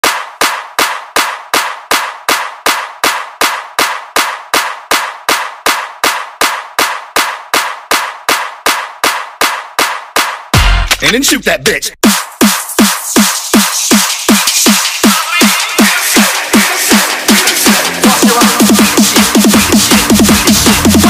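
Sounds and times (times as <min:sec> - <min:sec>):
sharp noisy percussion hits: 0:10.5 - 0:11.4.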